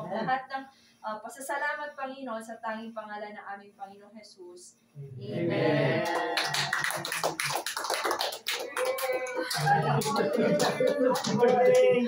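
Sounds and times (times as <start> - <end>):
overlapping voices: 5.2 - 12.0
hand claps: 6.0 - 12.0.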